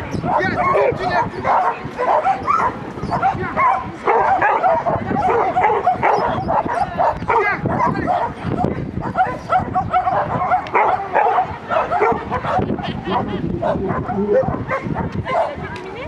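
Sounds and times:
dog barking: 0.2 - 15.6.

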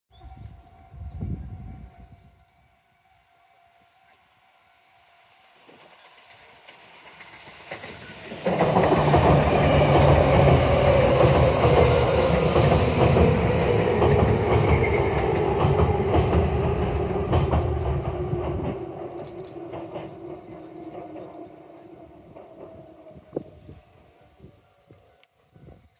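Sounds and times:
electric train crossing steel bridge: 0.1 - 25.9
train wheels clickety-clack: 5.6 - 23.4.

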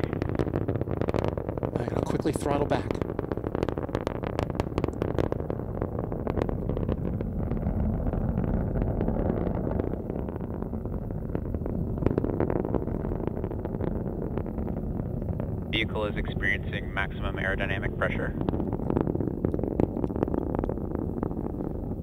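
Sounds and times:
rocket crackling: 0.0 - 22.0
rocket engine rumble: 0.0 - 22.0.

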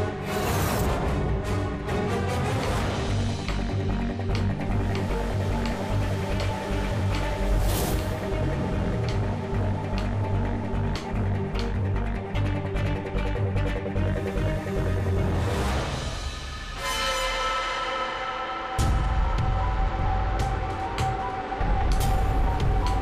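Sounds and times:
suspenseful score with pulsing bass: 0.0 - 23.0.

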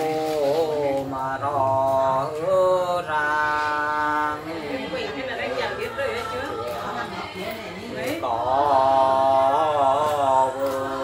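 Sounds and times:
person singing unaccompanied folk song: 0.0 - 11.0.

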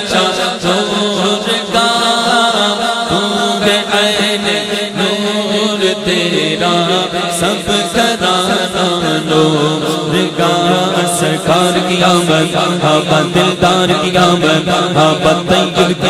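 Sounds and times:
man singing devotional chant: 0.0 - 16.0.

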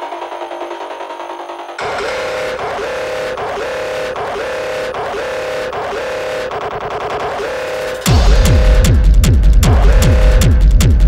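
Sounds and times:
hard techno music: 0.0 - 11.0.

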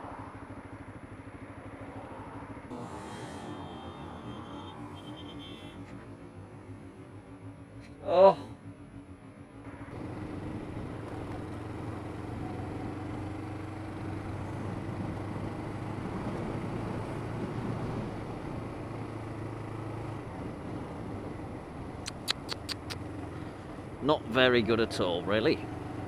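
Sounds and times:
wind and road noise: 0.0 - 26.0
motorcycle engine running: 8.5 - 26.0
sharp clicks: 22.1 - 23.0.

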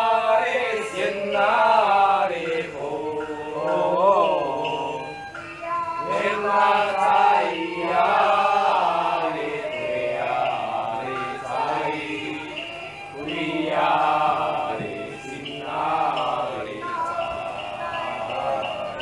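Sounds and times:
music: 0.0 - 19.0
voices chanting: 0.0 - 19.0.

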